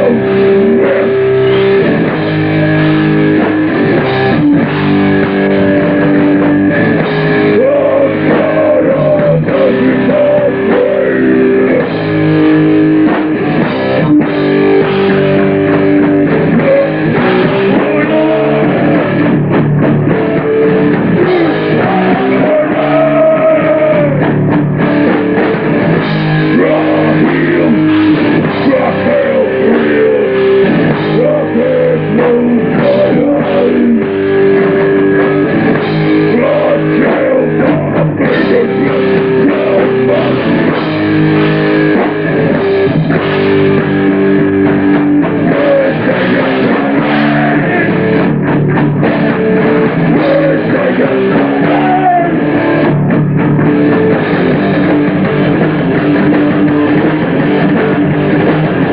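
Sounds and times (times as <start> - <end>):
distorted electric guitar: 0.0 - 58.9
pounding drum kit: 0.0 - 58.9.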